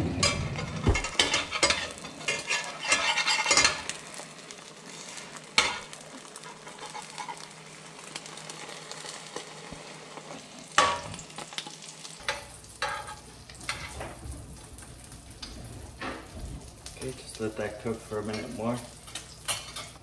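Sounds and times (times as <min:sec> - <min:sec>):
metal spatula scraping pan: 0:00.0 - 0:04.0, 0:06.4 - 0:07.4
omelet sizzling in frying pan: 0:00.0 - 0:20.0.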